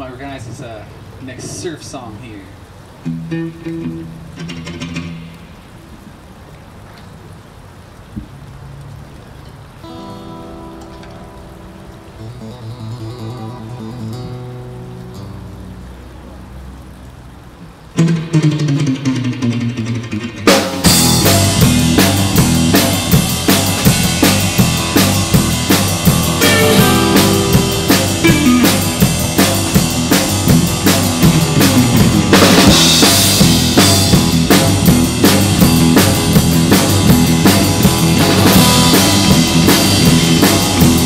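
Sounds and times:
plucked guitar and bass notes: 0:02.6 - 0:06.2, 0:09.6 - 0:41.0
loud guitar line with falling slide: 0:03.0 - 0:05.5, 0:09.8 - 0:15.7, 0:18.0 - 0:41.0
drum kit steady beat: 0:20.5 - 0:41.0.

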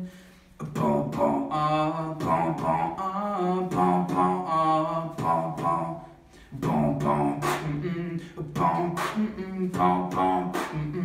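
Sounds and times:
person beatboxing: 0:00.6 - 0:11.0.

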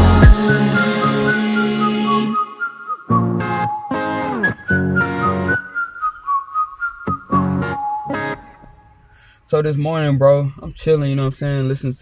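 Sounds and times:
held low note: 0:00.0 - 0:02.5
whistled melody: 0:00.0 - 0:08.8.

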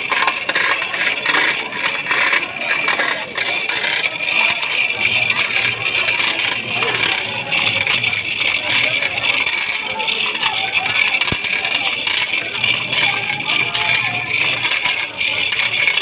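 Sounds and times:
rope and chain rigging rattling: 0:00.0 - 0:16.0.

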